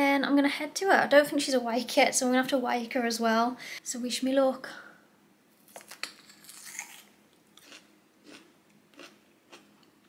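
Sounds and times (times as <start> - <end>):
biting crunchy fruit: 5.7 - 9.7
chewing with crunches: 5.8 - 9.8.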